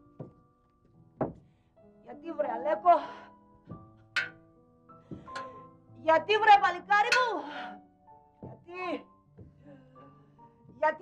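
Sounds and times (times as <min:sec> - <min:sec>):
quiet music with held notes: 0:00.0 - 0:11.0.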